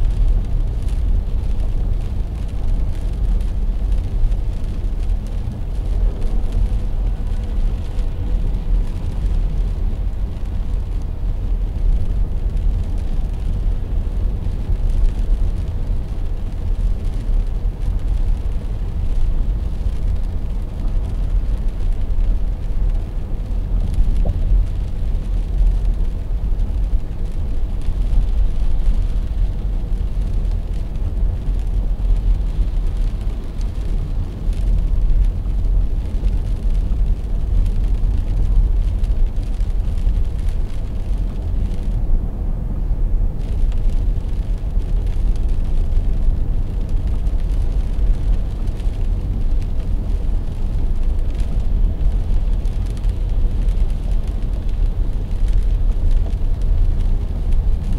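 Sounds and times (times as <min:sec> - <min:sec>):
car engine and tyre noise: 0:00.0 - 0:57.9.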